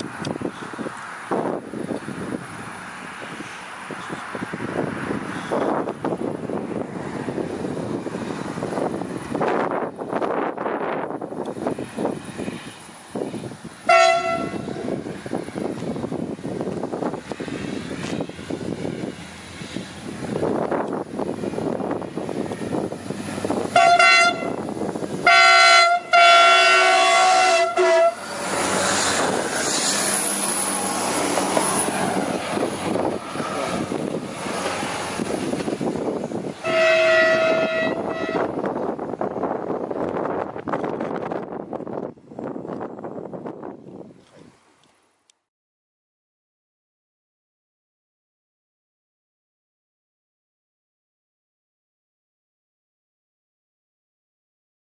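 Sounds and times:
train passing on rails: 0.0 - 45.1
train horn blasts: 13.8 - 14.9, 23.7 - 24.6, 25.2 - 28.6, 36.6 - 38.7.

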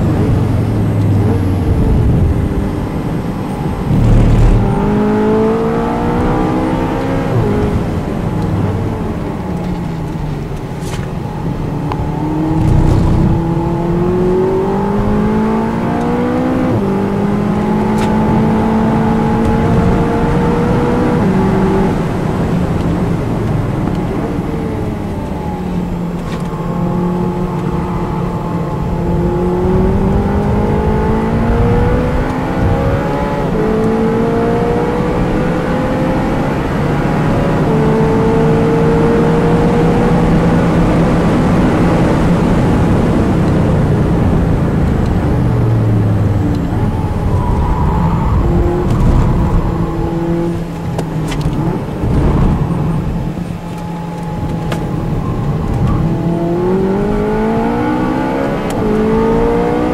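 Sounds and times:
car engine revving: 0.0 - 8.4, 11.7 - 59.9.

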